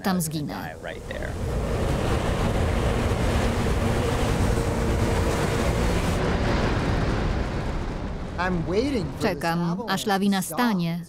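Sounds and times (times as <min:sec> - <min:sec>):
snow avalanche rumbling: 0:00.8 - 0:09.5.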